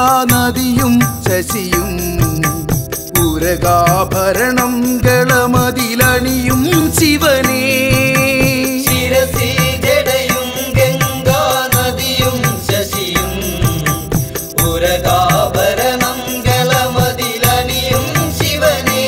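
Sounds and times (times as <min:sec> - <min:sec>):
devotional song with percussion: 0:00.0 - 0:19.0.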